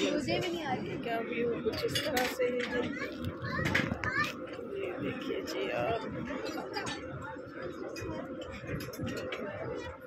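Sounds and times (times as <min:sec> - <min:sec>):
diners chattering: 0:00.0 - 0:10.0
children's voices: 0:02.6 - 0:04.8.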